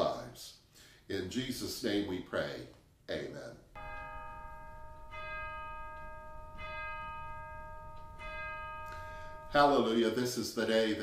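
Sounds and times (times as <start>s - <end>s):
bell ringing: 3.8s - 10.2s.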